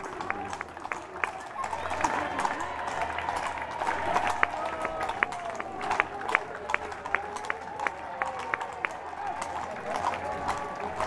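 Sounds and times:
crowd chatter: 0:00.0 - 0:11.0
horse hooves clopping on asphalt: 0:00.0 - 0:11.0.

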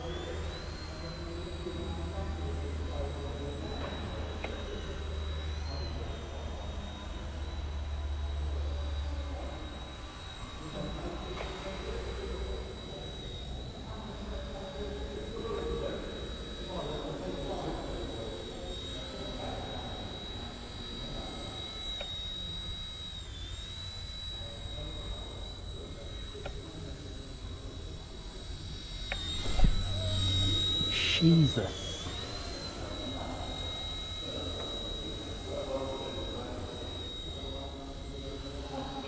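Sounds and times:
toy helicopter motor whine: 0:00.0 - 0:39.0.

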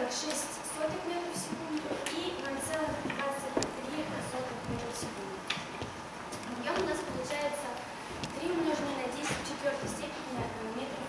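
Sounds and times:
woman speaking: 0:00.0 - 0:05.5, 0:06.4 - 0:11.0.

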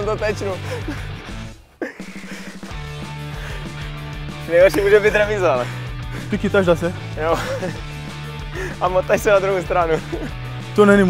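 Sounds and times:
rock music with guitar and bass: 0:00.0 - 0:11.0.

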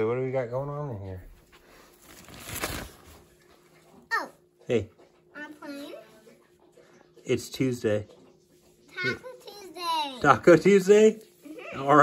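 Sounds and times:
fabric tent flap rustling: 0:02.0 - 0:03.2.

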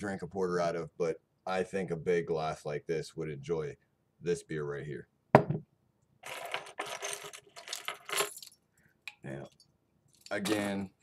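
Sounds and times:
coins jingling: 0:06.2 - 0:08.6.

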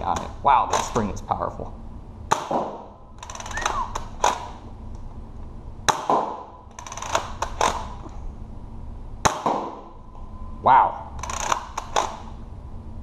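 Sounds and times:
blaster spring snapping: 0:02.3 - 0:04.6, 0:11.2 - 0:12.3.

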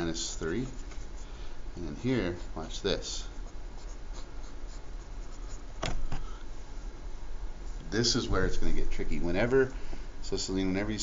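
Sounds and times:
pen scratching on paper: 0:02.3 - 0:05.7.

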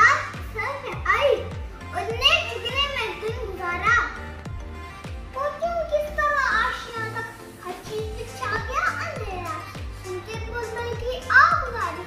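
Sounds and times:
background music with low beat: 0:00.0 - 0:12.0.

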